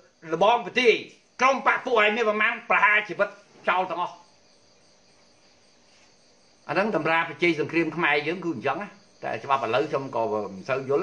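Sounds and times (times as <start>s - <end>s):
man speaking: 0.0s - 4.2s, 6.7s - 11.0s
insect chirring: 0.0s - 11.0s.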